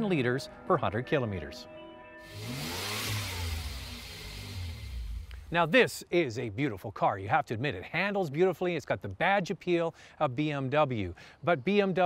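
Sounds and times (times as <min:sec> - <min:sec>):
faint rising and falling tone: 0:02.2 - 0:05.6
car driving past accelerating: 0:02.3 - 0:05.5.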